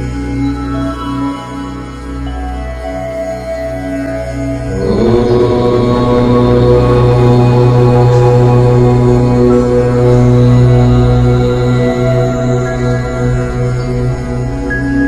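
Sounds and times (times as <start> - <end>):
meditation music drone: 0.0 - 15.0
person chanting om: 0.0 - 15.0.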